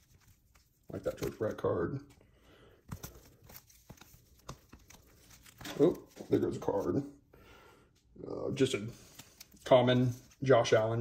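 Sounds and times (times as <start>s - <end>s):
plastic sleeves crinkling: 0.0s - 2.2s, 2.8s - 7.1s, 8.6s - 11.0s.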